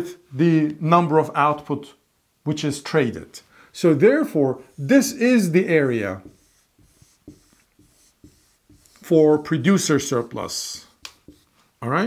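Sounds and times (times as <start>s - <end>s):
marker strokes on whiteboard: 4.6s - 11.8s.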